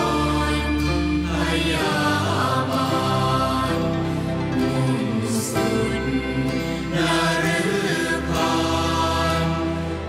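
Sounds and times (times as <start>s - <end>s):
group chanting in unison: 0.0s - 5.8s, 6.6s - 10.0s.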